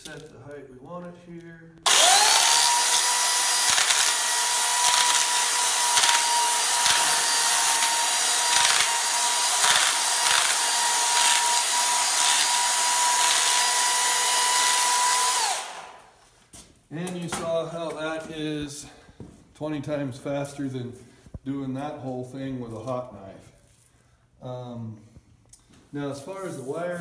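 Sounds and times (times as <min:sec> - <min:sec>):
electric chainsaw whine: 0:01.8 - 0:16.0
grinding of chain cutting foam: 0:01.9 - 0:15.6.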